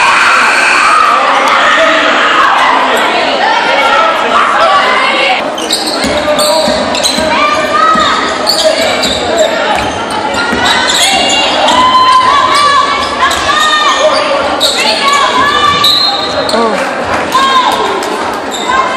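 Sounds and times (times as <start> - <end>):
crowd background: 0.0 - 18.9
basketball bouncing on court: 5.9 - 8.3, 9.0 - 10.9
people shouting: 7.2 - 15.9.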